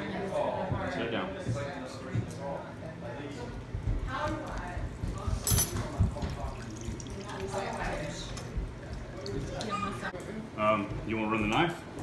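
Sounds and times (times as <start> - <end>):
liquid pouring into saucepan: 5.8 - 10.1.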